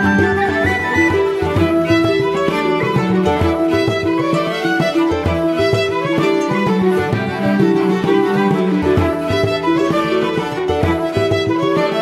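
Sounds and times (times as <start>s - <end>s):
fiddle playing a tune: 0.0s - 12.0s
rhythmic accompaniment: 0.0s - 12.0s.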